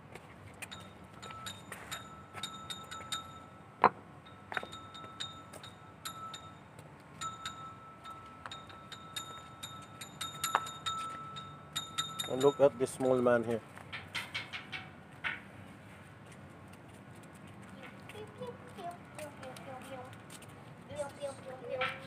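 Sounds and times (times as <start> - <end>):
light clicks and clinks: 0.5 - 3.6, 4.2 - 15.4.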